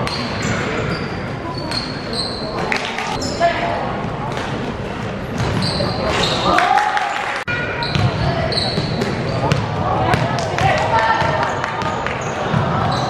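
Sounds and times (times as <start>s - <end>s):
sneakers squeaking on wooden court: 0.0s - 3.6s, 5.3s - 6.6s, 7.8s - 13.0s
voices in a sports hall: 0.0s - 13.0s
basketball bouncing: 8.8s - 12.7s.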